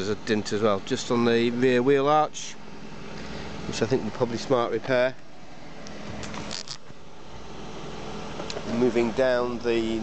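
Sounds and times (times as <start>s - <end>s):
steady background hum: 0.0s - 10.0s
sharp clicks or scrapes: 6.2s - 6.9s.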